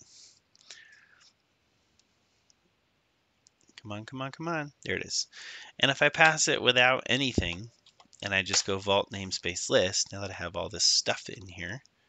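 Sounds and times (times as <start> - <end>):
soft breath: 0.0 - 1.4, 5.3 - 5.8
person speaking: 3.8 - 11.8.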